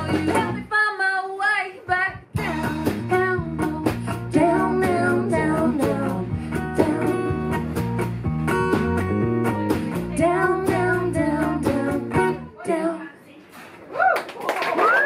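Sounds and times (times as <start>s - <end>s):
acoustic folk band playing: 0.0s - 0.7s, 2.3s - 12.6s
woman singing: 0.0s - 7.4s, 9.9s - 13.3s.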